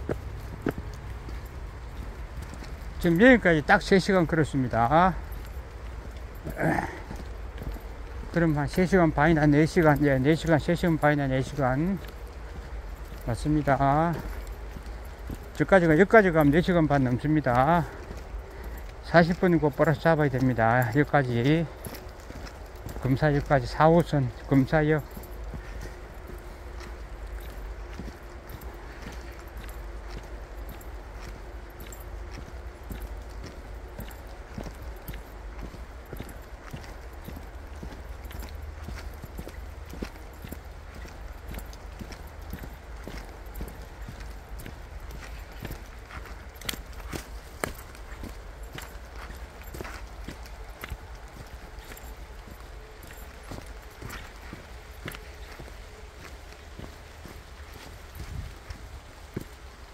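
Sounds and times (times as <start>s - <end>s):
footsteps on dirt and leaves: 0.0s - 59.9s.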